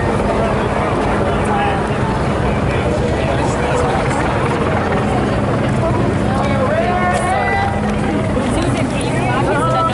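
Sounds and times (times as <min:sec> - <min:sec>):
low mechanical drone: 0:00.0 - 0:09.9
voices talking: 0:00.0 - 0:09.9.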